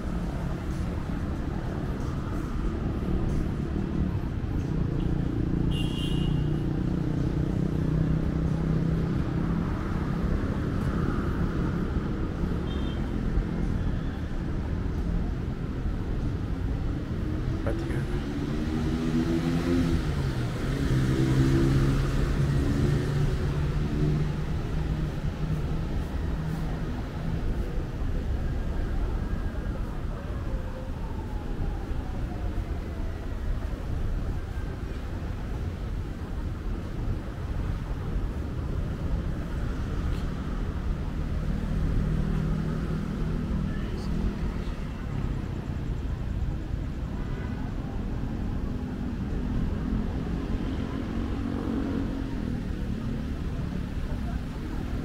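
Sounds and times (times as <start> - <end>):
road traffic rumble: 0.0 - 55.0
people talking: 50.9 - 55.0.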